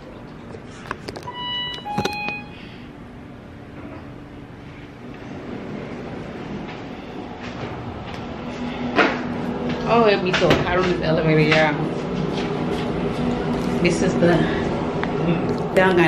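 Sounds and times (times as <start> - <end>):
low mechanical hum: 0.0 - 16.0
two-note electronic beep: 1.3 - 2.7.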